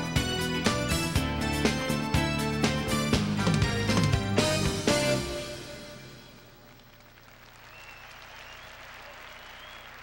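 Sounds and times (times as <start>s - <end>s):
audience applauding: 6.6s - 10.0s.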